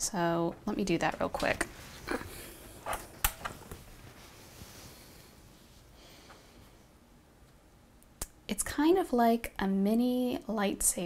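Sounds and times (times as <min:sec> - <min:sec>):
faint handling noise: 0:00.4 - 0:06.8.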